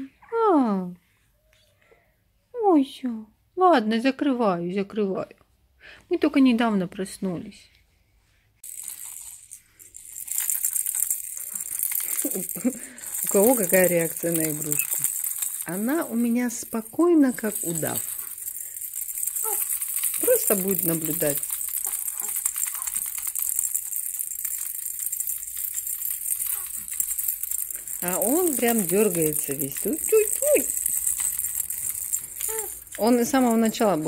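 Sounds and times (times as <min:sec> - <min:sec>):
baby rattle shaking: 0:08.6 - 0:34.0.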